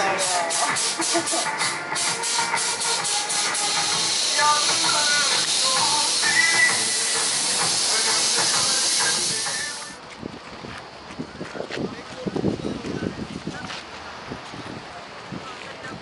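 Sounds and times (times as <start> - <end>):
cicada chorus hissing: 0.0 - 10.0.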